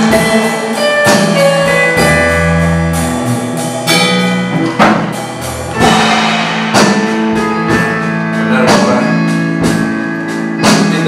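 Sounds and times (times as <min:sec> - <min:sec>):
electronic keyboard chords: 0:00.0 - 0:11.0
steady drum beat: 0:00.0 - 0:11.0.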